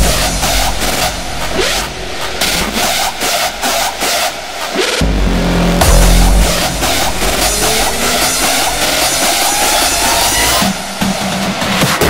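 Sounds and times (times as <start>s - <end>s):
deep bass kick drum: 0.0s - 2.0s, 5.0s - 10.9s
swooping synth pitch glides: 0.0s - 11.6s
hardstyle dance music: 0.0s - 12.0s
high percussion: 0.0s - 12.0s.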